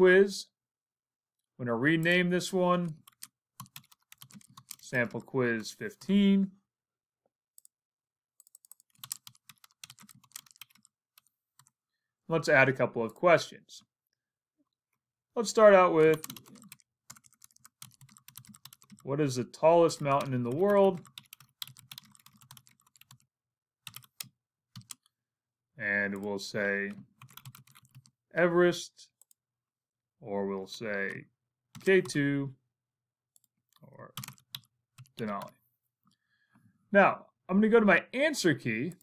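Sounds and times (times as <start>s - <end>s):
keyboard typing: 3.0s - 5.2s, 8.4s - 11.8s, 16.0s - 19.1s, 19.9s - 25.1s, 26.9s - 28.2s, 34.1s - 35.5s.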